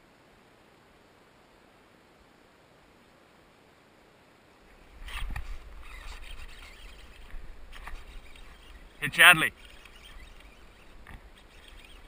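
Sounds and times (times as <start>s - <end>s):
rustling: 4.9s - 12.0s.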